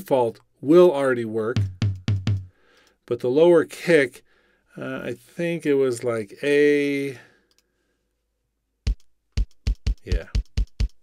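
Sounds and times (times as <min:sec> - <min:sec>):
kick drum hit: 0:01.6 - 0:02.5, 0:08.9 - 0:11.0.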